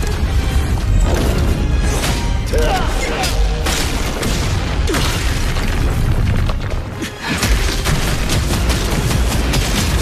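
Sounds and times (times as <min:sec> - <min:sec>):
dramatic orchestral score: 0:00.0 - 0:10.0.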